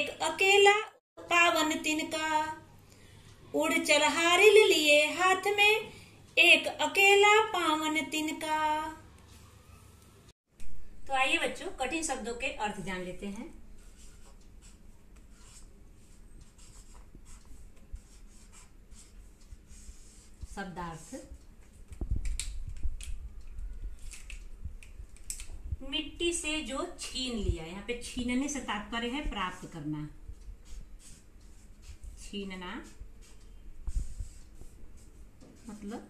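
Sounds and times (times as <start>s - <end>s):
marker pen scratching on paper: 13.8s - 21.4s.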